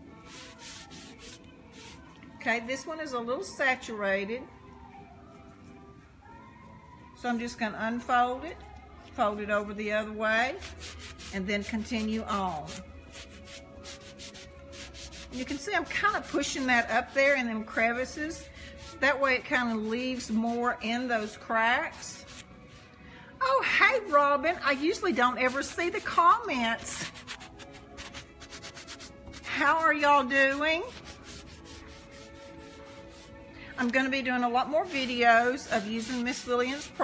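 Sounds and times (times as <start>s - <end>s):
gauze pad scrubbing wood trim: 0.2s - 2.0s, 10.6s - 21.4s, 24.8s - 37.0s.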